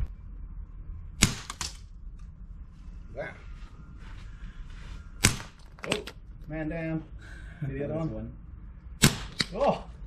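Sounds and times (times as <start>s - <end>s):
airsoft pistol shot: 1.2s - 1.8s, 5.2s - 5.6s, 9.0s - 9.6s.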